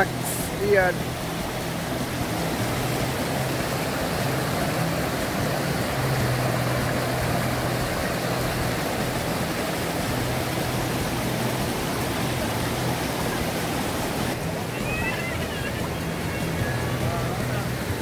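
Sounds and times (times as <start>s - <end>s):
river flowing over rocks: 0.0s - 18.0s.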